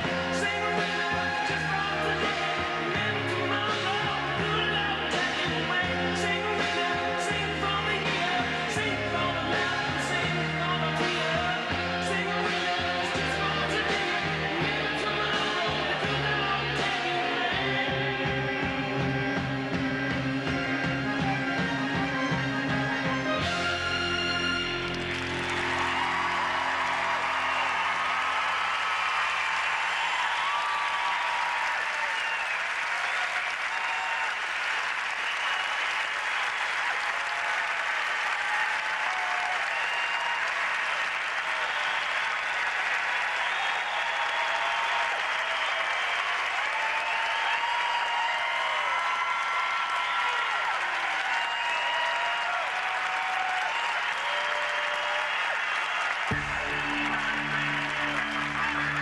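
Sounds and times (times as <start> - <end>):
audience applauding: 0.0 - 59.0
crowd cheers: 0.0 - 59.0
music: 0.0 - 59.0.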